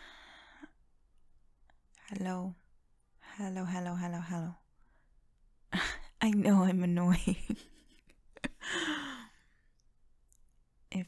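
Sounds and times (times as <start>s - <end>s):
woman speaking: 2.0s - 2.6s, 3.3s - 4.6s, 5.8s - 7.6s
woman laughing: 7.1s - 9.1s
woman exhaling breathily: 8.6s - 9.4s.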